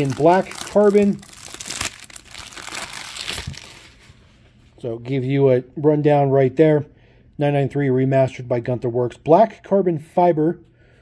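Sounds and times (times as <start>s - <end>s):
plastic wrap crinkling: 0.0s - 4.3s.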